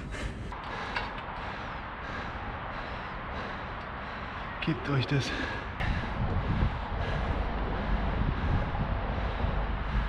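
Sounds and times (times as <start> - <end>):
wind buffeting microphone: 5.4 - 10.0.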